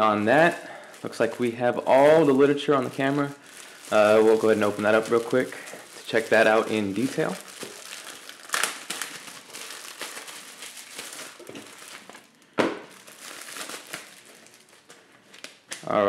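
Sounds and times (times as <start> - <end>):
plastic bag crinkling: 0.0 - 15.8
paper rustling: 1.0 - 12.3.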